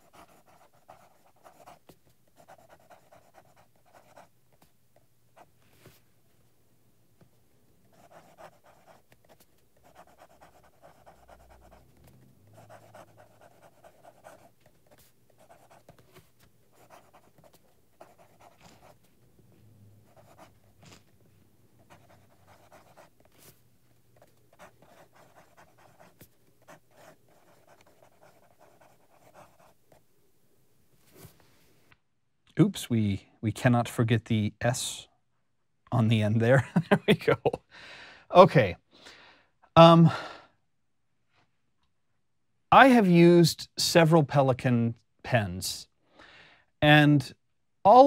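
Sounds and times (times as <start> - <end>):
fountain pen scratching on paper: 0.0 - 1.8, 2.4 - 4.3, 7.9 - 11.8, 12.6 - 16.1, 16.7 - 19.0, 20.1 - 21.1, 21.8 - 23.6, 24.2 - 29.8.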